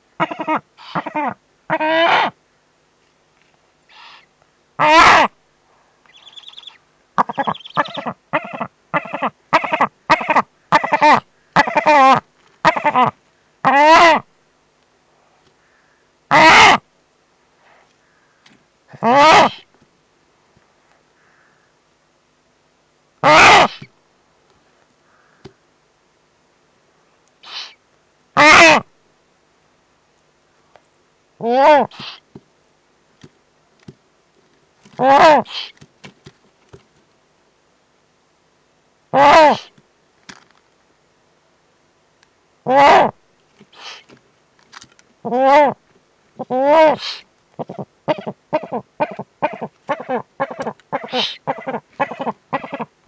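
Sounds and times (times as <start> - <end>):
owls calling: 0.2 - 2.4, 3.9 - 5.4, 6.1 - 14.2, 15.7 - 16.8, 19.0 - 19.7, 23.2 - 23.9, 31.4 - 32.2, 39.2 - 39.7, 46.4 - 52.9.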